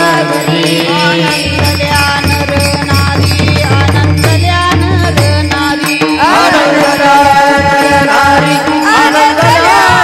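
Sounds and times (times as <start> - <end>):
women chanting in unison: 6.0 - 10.0.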